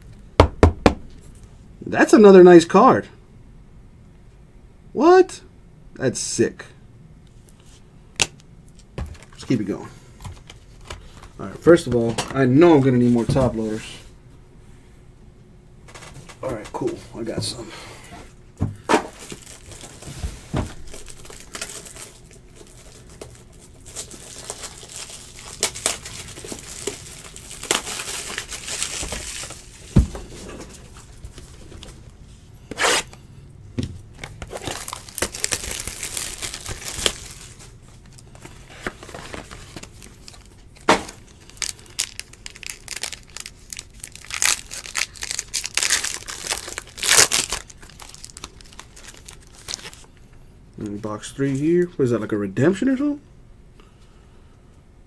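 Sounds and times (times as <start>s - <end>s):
wrapper crinkling and tearing: 19.1s - 20.1s, 20.7s - 32.0s, 34.2s - 50.1s
rustling of cards: 34.2s - 50.1s.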